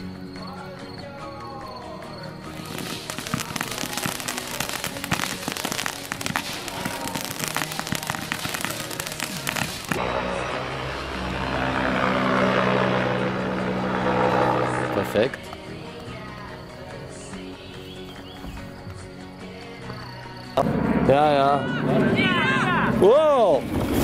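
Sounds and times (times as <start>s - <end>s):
background music: 0.0s - 24.0s
firework crackling: 2.5s - 10.2s, 23.5s - 24.0s.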